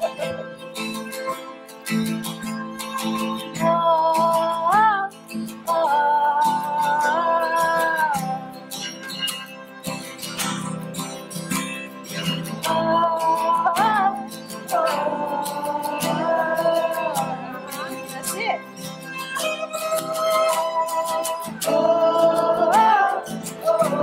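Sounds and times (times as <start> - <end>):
acoustic guitars strumming: 0.0 - 24.0.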